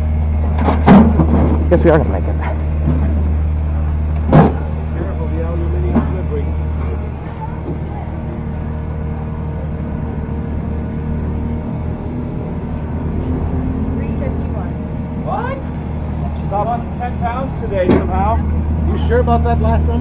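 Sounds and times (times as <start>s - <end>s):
steady low hum: 0.0s - 20.0s
sharp knocks: 4.2s - 4.7s, 17.8s - 18.2s.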